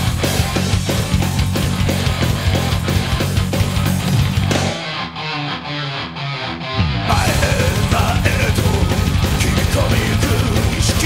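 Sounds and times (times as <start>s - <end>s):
electric guitar riff: 0.0s - 11.0s
thrash metal band playing: 0.0s - 11.0s.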